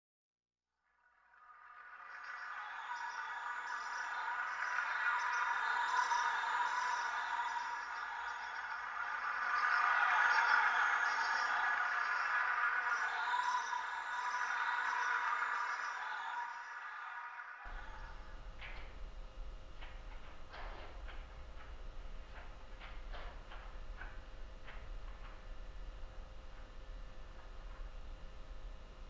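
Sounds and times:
faint high pulse: 1.0 - 20.7
dark ambient music drone: 1.3 - 29.0.

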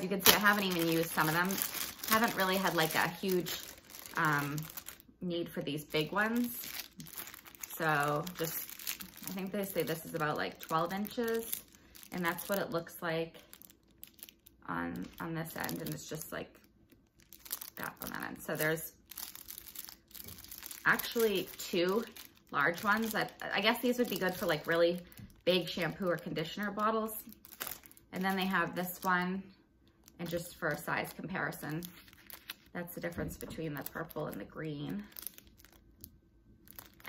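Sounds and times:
plastic sleeves crinkling: 0.0 - 37.0.

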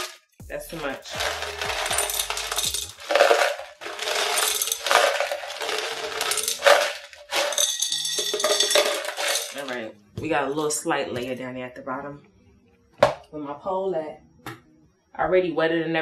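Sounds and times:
stones rattling into a container: 1.0 - 9.8.

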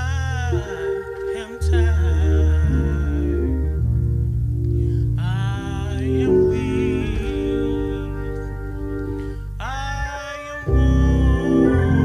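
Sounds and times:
low instrumental notes: 0.0 - 12.0.

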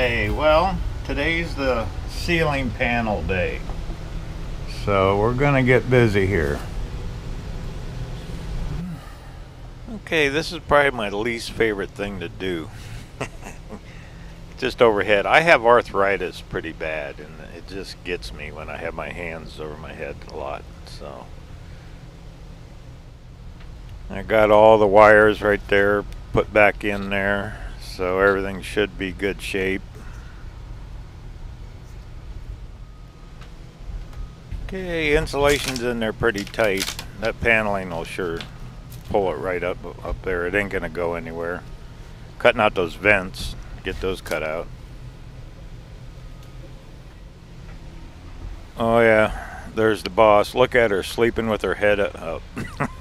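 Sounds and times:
low hum: 0.0 - 53.0.

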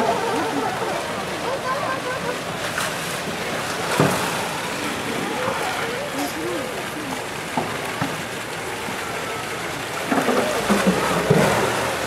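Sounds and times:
water sloshing: 0.0 - 12.0
water splashing: 0.0 - 12.0.

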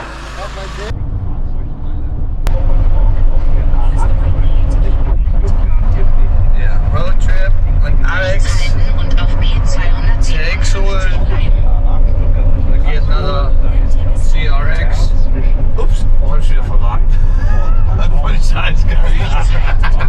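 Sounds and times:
car rumbling on road: 0.0 - 20.0
faint voices talking: 0.0 - 20.0.

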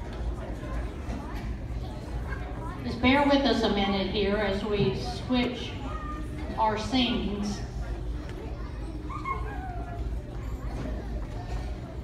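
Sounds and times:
audience murmur and shuffle: 0.0 - 12.0
small child whining: 9.0 - 10.2.

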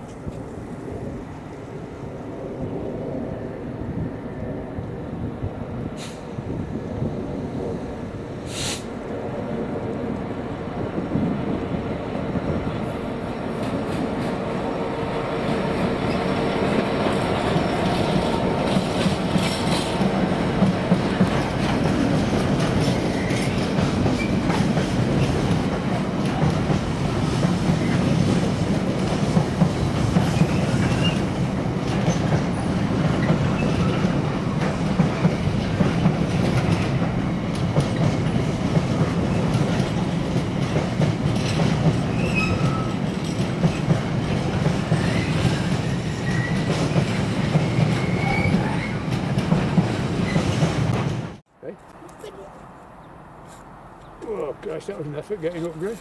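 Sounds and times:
freight train wheels rumbling: 0.0 - 51.5, 54.2 - 56.0.

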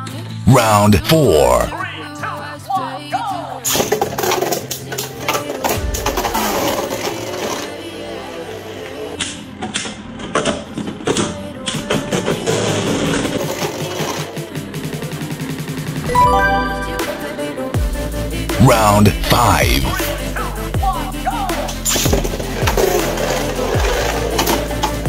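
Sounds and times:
background music: 0.0 - 25.0.

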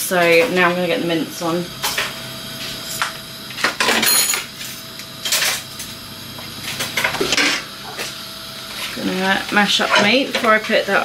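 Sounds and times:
knocks and clatters in kitchen: 2.8 - 10.9.

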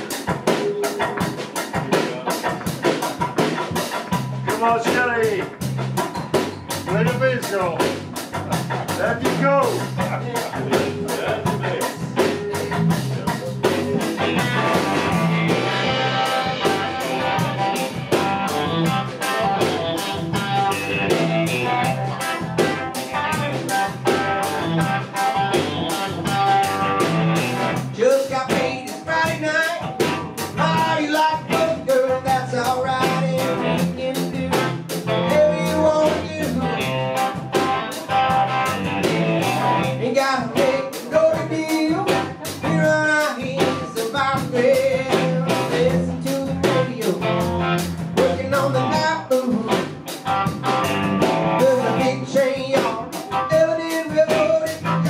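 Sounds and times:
blues rock band playing: 0.0 - 55.0
man singing: 0.1 - 2.4, 4.4 - 5.6, 6.9 - 7.9, 8.5 - 14.8, 21.1 - 24.0, 27.8 - 37.4, 39.8 - 50.2, 51.5 - 55.0.

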